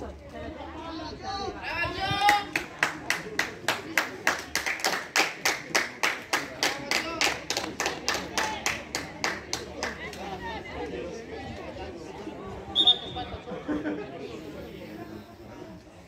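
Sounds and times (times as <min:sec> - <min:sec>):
hands clapping rhythmically: 0:02.2 - 0:10.2.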